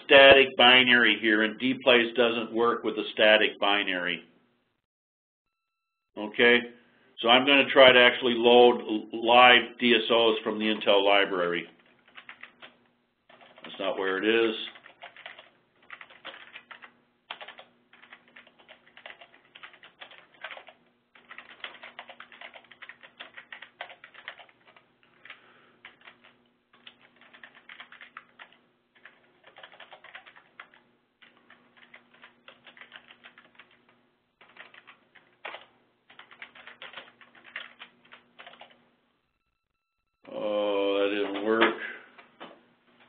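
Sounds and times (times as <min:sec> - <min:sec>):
computer keyboard typing: 0:11.8 - 0:13.9, 0:14.7 - 0:38.8.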